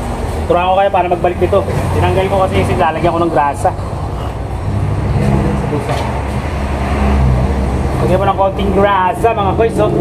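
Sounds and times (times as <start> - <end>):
motor vehicle rumble: 0.0 - 10.0.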